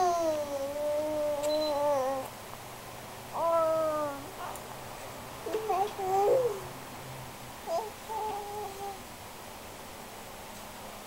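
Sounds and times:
baby vocalizing: 0:00.0 - 0:02.3, 0:03.4 - 0:04.3, 0:05.5 - 0:06.7, 0:07.7 - 0:09.0.

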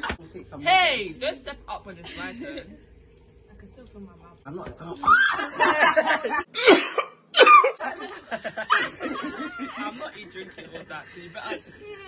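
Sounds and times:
laughter: 0:05.1 - 0:06.5, 0:07.4 - 0:11.9
person coughing: 0:06.5 - 0:07.7.

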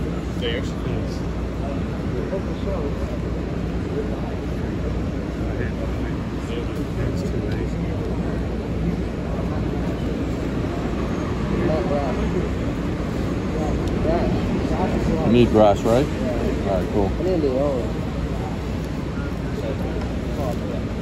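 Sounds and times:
bus engine idling: 0:00.0 - 0:21.0.

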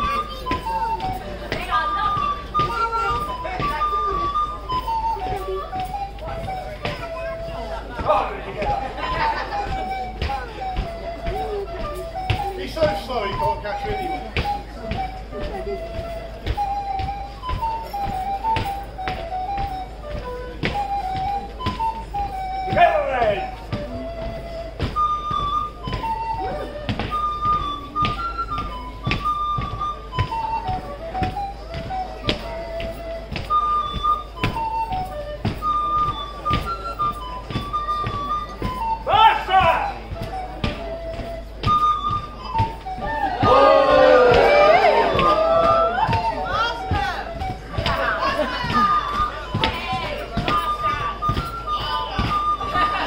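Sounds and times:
crowd voices: 0:00.0 - 0:53.0.

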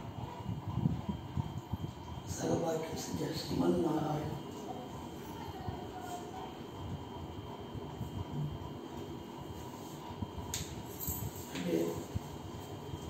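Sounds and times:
background hum: 0:00.0 - 0:13.0
faint low voices: 0:04.4 - 0:08.7.

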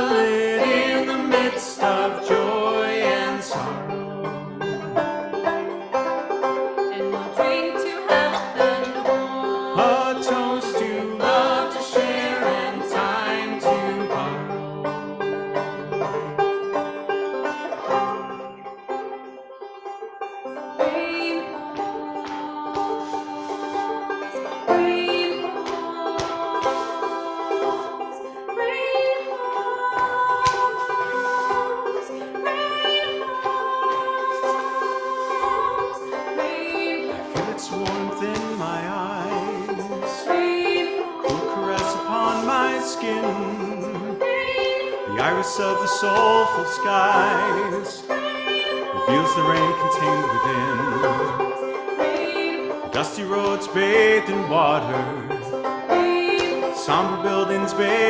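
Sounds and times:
banjo picking a tune: 0:00.0 - 0:58.0.

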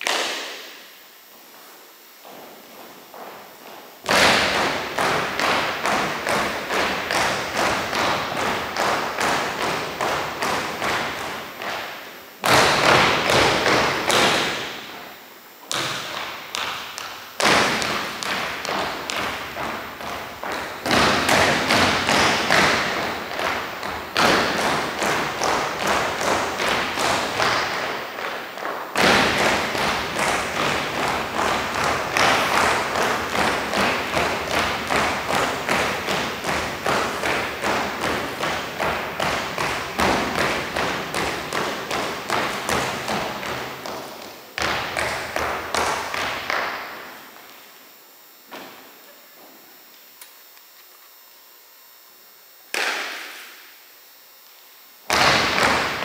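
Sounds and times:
footsteps stamping on hardwood floor: 0:02.2 - 0:15.0, 0:15.6 - 0:46.9.

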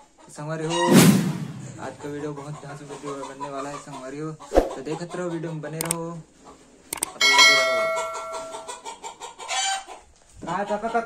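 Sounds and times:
bell-like chime: 0:07.2 - 0:08.7.

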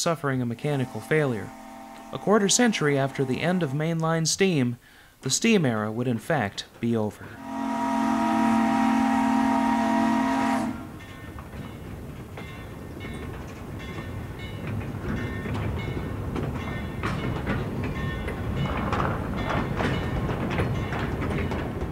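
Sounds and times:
steam train running on track: 0:00.0 - 0:04.0, 0:07.2 - 0:21.9
steam locomotive whistle: 0:00.6 - 0:03.9, 0:07.4 - 0:11.0
rhythmic clicks and clanks: 0:11.4 - 0:21.9.

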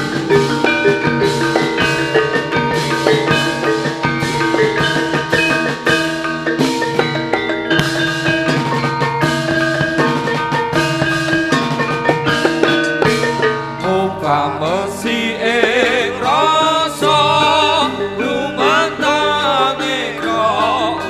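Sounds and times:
bronze keyed instruments ringing: 0:00.0 - 0:21.0
gongs: 0:00.0 - 0:21.0
hand drumming: 0:00.0 - 0:21.0.

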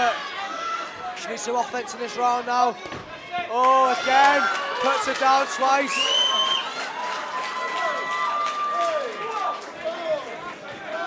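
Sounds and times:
crowd shouting: 0:00.0 - 0:02.0.

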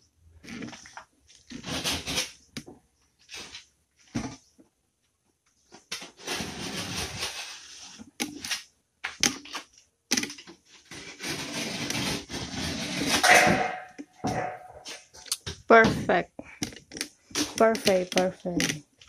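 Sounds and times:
gypsum board scraping against wall: 0:01.4 - 0:02.5, 0:05.9 - 0:08.4, 0:10.3 - 0:15.1.

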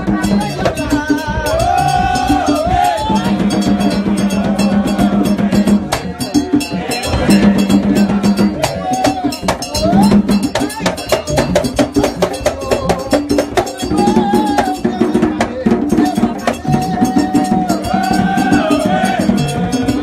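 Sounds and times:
fast hand drums and percussion: 0:00.0 - 0:20.0.

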